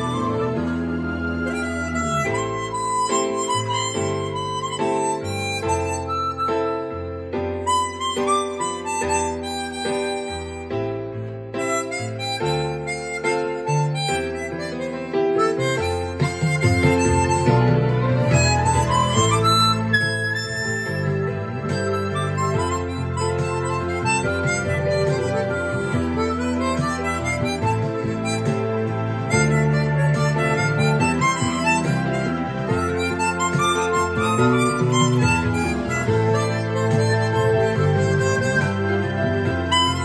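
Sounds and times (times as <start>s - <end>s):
chromatic harmonica melody: 0.0s - 40.0s.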